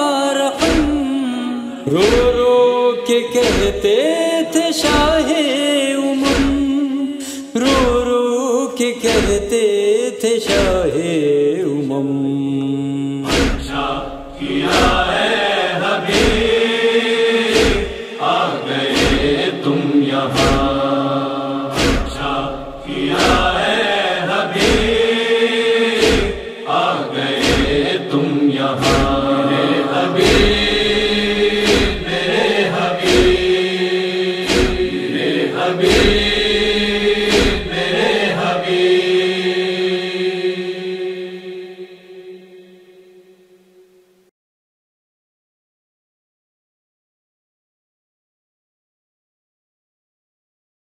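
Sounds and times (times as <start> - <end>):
chorus of voices chanting: 0.0 - 8.1, 8.9 - 9.6, 10.4 - 43.5
chest-beating strikes: 13.3 - 15.2, 16.1 - 16.6, 17.5 - 18.0, 18.9 - 19.5, 20.3 - 20.8, 21.7 - 23.7, 24.6 - 25.1, 26.0 - 26.4, 27.4 - 27.9, 28.8 - 29.3, 30.2 - 33.7, 34.4 - 35.1, 35.8 - 38.2.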